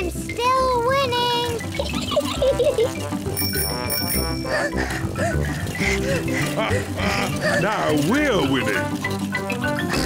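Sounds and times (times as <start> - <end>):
cartoon background music: 0.0 - 10.0
cartoon giggles: 1.8 - 3.0
bicycle bell ringing: 3.3 - 4.8.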